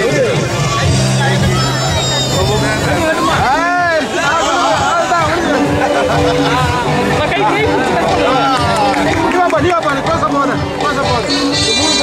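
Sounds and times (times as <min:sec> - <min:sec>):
crowd talking: 0:00.0 - 0:12.0
music playing: 0:00.0 - 0:12.0.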